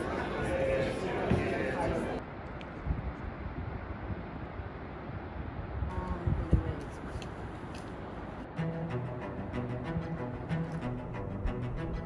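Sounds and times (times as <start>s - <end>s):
background music: 8.5s - 12.0s.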